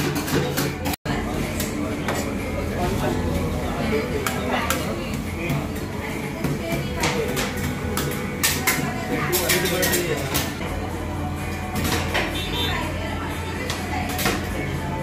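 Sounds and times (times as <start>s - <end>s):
background chatter: 0.4s - 15.0s.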